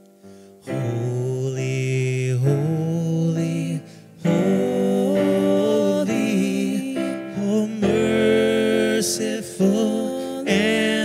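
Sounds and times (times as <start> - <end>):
keyboard accompaniment: 0.0 - 11.0
person singing slow worship song: 0.0 - 11.0.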